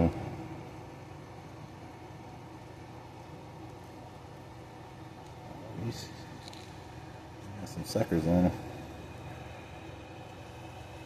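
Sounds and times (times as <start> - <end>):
faint background hum and hiss: 0.0 - 11.0.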